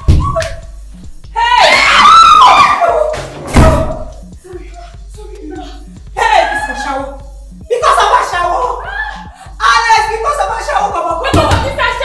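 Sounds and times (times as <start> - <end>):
woman screaming: 1.3 - 3.2, 8.4 - 10.1.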